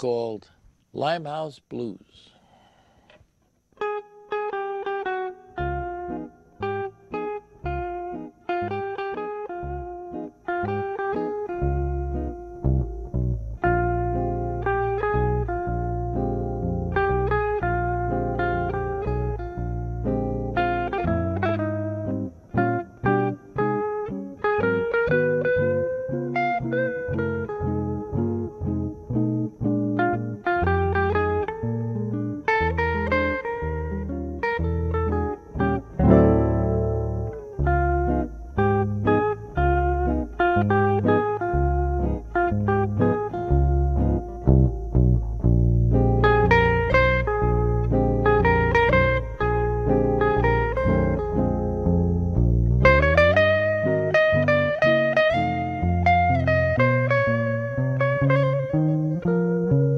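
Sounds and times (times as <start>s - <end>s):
jazz guitar duet: 3.1s - 59.9s
bass line: 5.6s - 7.0s, 7.6s - 59.9s.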